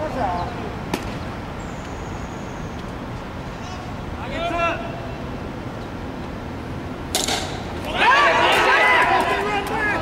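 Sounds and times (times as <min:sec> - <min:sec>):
voices: 0:00.0 - 0:00.8, 0:03.6 - 0:05.2, 0:07.4 - 0:10.0
bat hitting ball: 0:07.1 - 0:07.8
player shouting: 0:07.9 - 0:10.0.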